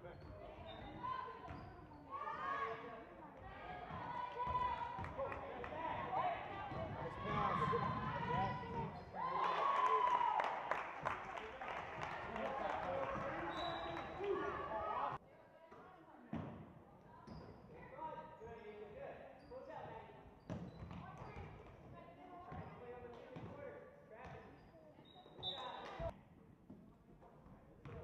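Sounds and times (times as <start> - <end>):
players and spectators voices: 0.0 - 26.2
loud crowd noise: 3.4 - 15.2
referee's whistle: 13.4 - 14.4, 25.1 - 25.9.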